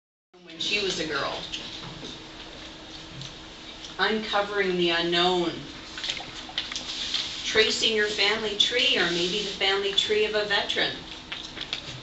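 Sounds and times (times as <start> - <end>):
steady low hum: 0.4 - 12.0.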